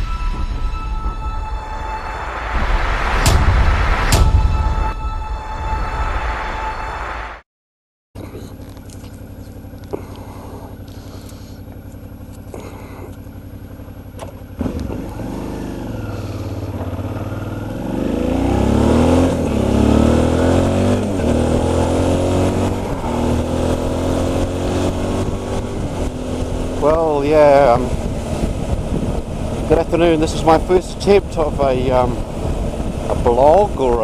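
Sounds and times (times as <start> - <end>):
motorcycle engine idling and accelerating: 8.2 - 34.0.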